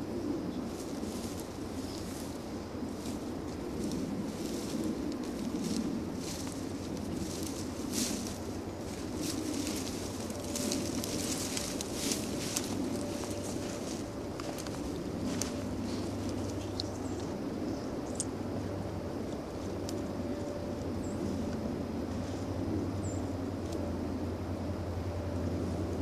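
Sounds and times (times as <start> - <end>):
low background hiss: 0.0 - 26.0
footsteps through leaves: 0.7 - 17.4.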